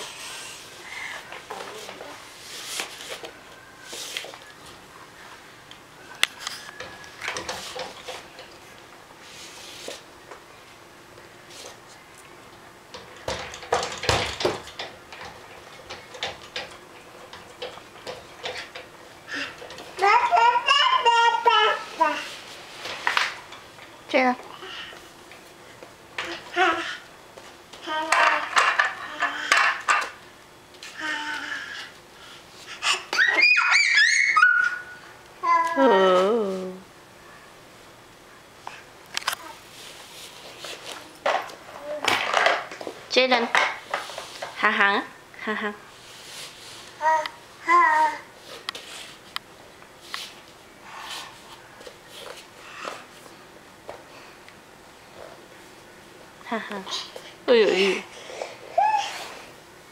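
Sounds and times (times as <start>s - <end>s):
toddler squealing: 32.9s - 35.0s.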